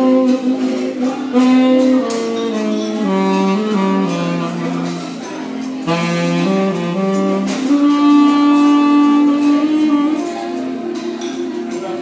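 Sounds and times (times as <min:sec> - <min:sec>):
tenor saxophone long note: 0:00.0 - 0:05.2, 0:05.8 - 0:11.0.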